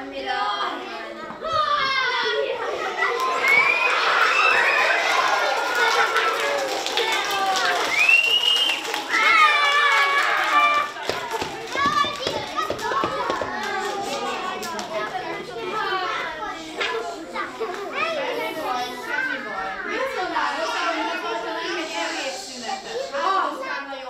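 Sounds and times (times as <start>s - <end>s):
young children talking and calling: 0.0s - 24.0s.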